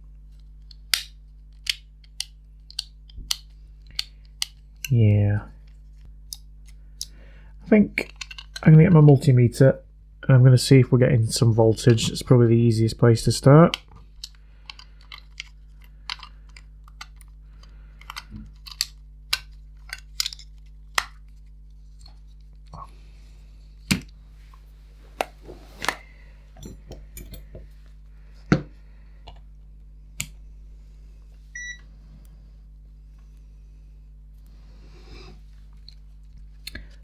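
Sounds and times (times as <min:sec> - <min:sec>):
multimeter beep: 0:31.6 - 0:31.8.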